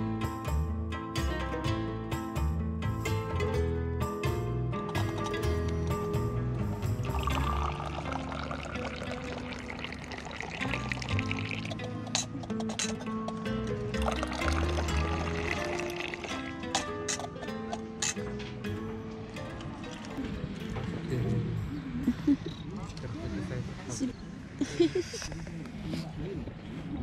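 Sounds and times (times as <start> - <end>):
background music: 0.0 - 22.7
tea pouring into a glass: 7.0 - 11.8, 14.0 - 16.5.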